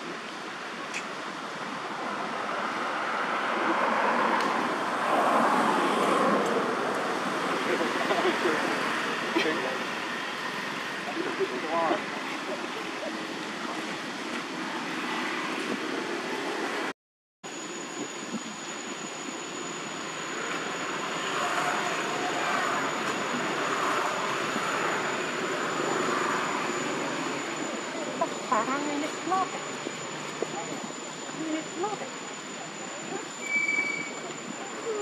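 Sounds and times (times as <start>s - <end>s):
thin high whine: 0.0s - 16.9s, 17.5s - 35.0s
outdoor background noise: 0.0s - 35.0s
faint high calls: 31.2s - 35.0s.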